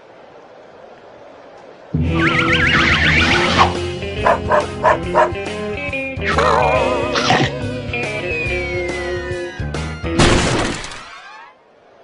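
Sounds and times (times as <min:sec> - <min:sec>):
warbling comedy effects: 0:02.0 - 0:03.8
cartoon orchestral music: 0:02.0 - 0:09.6.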